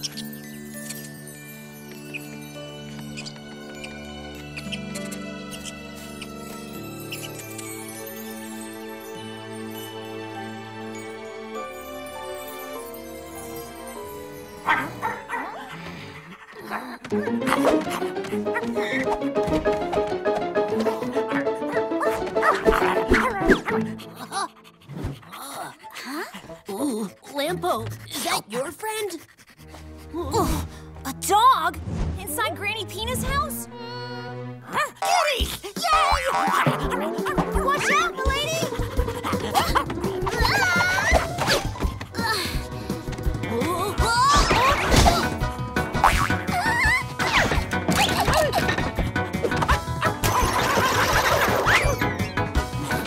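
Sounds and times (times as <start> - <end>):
background music: 0.0 - 53.0
cartoon puppy yipping and barking: 21.3 - 24.5, 34.8 - 41.8, 49.6 - 52.3.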